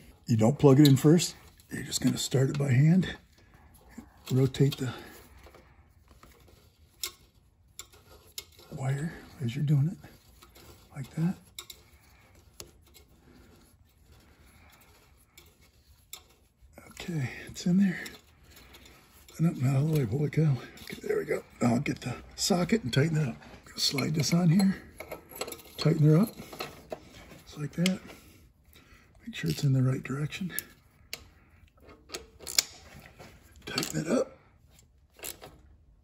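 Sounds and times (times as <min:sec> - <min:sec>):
hand rubbing and ticking on metal: 0:04.2 - 0:27.0.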